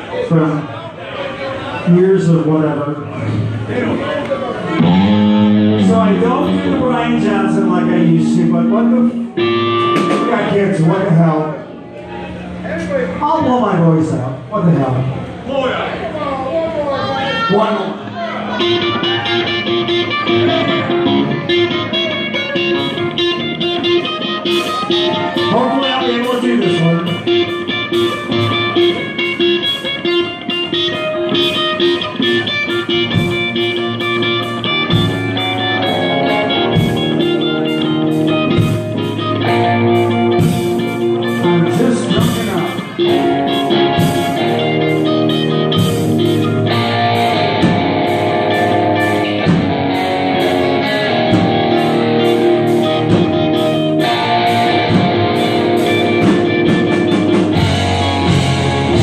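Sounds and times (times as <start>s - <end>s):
live rock band playing: 1.8s - 15.1s, 17.0s - 59.0s.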